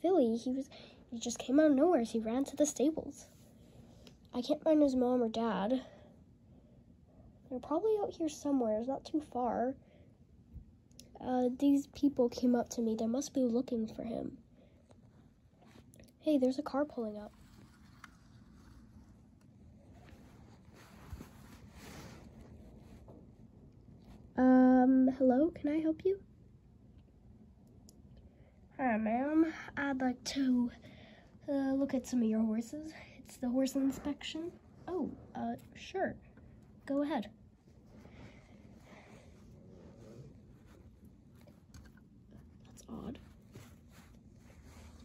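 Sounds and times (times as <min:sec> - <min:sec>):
toy figures rustling on carpet: 0:16.9 - 0:23.2, 0:37.6 - 0:45.0.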